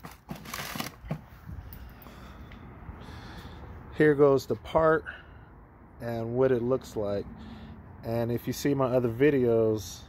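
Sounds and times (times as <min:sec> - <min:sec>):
paper rustling in plastic bucket: 0:00.0 - 0:01.2.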